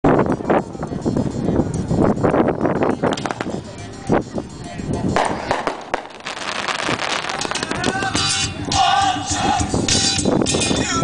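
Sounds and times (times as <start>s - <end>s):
voices in background: 0.0s - 9.6s
firework bangs overhead: 3.1s - 3.6s, 5.2s - 8.4s.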